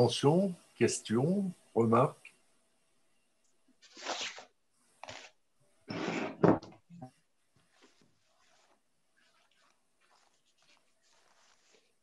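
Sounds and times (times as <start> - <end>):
pen scratching on paper: 7.7 - 12.0.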